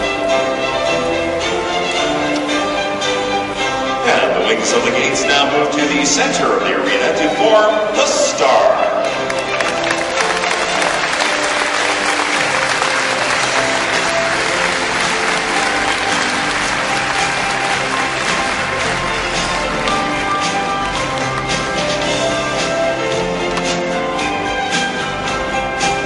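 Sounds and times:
music: 0.0 - 26.0
audience applauding: 9.1 - 23.0.

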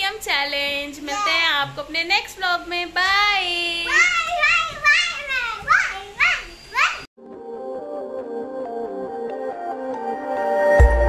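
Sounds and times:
girls calling goodbyes: 3.0 - 7.1.

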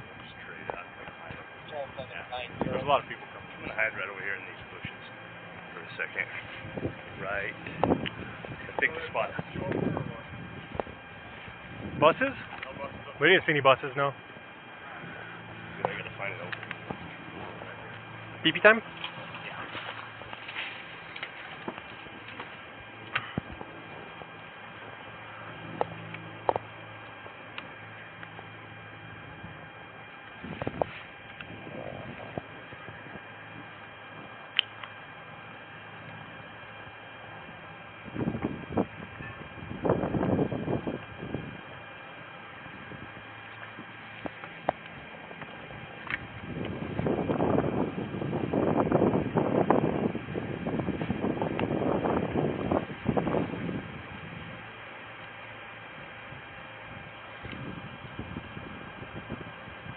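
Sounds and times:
faint electrical hum: 0.0 - 59.9.

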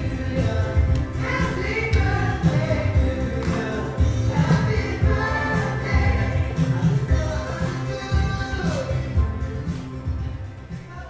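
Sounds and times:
group of voices singing: 0.0 - 9.4
band with steady bass beat: 0.0 - 10.9.

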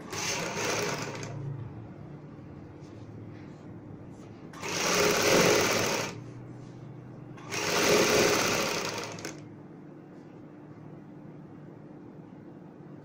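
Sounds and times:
sewing machine stitching: 0.0 - 1.4, 4.6 - 6.2, 7.4 - 9.4.

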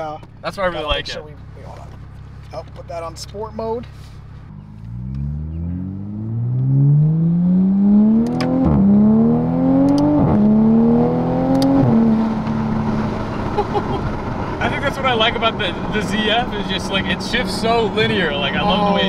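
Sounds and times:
car engine accelerating: 1.2 - 19.0.

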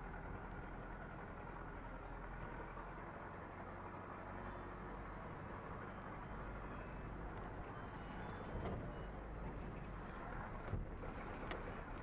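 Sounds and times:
vehicle road noise rumble: 0.0 - 12.0.

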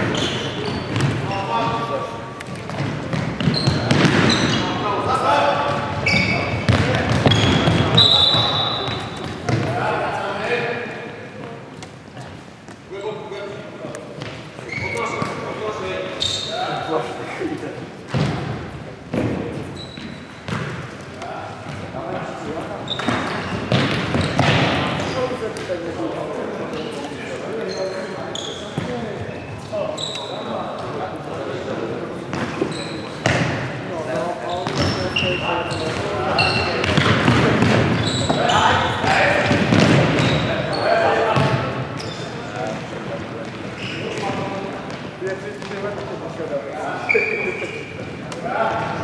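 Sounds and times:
shoes squeaking on court: 0.0 - 9.7, 14.0 - 17.0, 19.1 - 25.9, 26.6 - 31.0, 32.3 - 46.2, 47.0 - 49.0.

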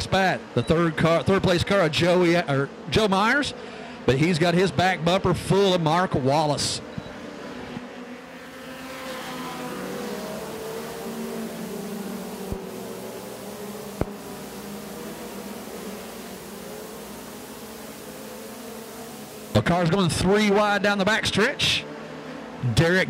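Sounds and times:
race car engines droning: 0.0 - 23.0.

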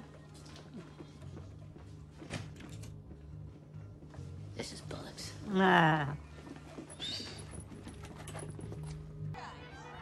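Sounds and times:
whispered dialogue: 4.5 - 6.2.

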